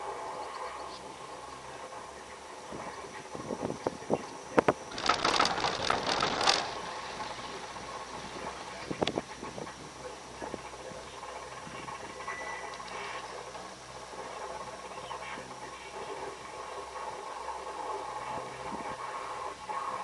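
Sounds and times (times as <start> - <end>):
cable car steady hum: 0.0 - 20.0
scattered clicks: 4.6 - 7.7
cable car rattling clatter: 4.9 - 9.8.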